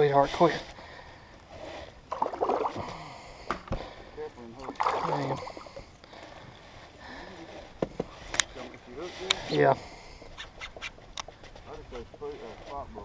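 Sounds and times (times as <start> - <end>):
water sloshing and splashing: 2.1 - 6.8.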